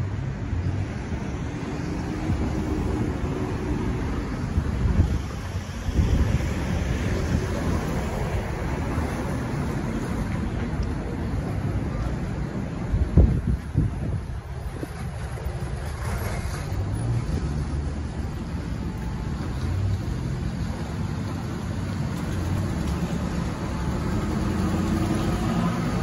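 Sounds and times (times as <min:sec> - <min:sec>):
low rumble of road traffic: 0:00.0 - 0:26.0.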